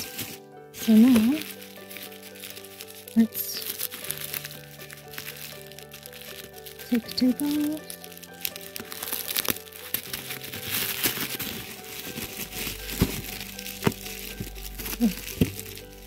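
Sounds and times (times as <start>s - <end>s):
bubble wrap cracks: 0.0s - 16.0s
bubble wrap crinkling: 0.0s - 16.0s
soft background music: 0.0s - 16.0s
tape peeling off: 0.0s - 16.0s.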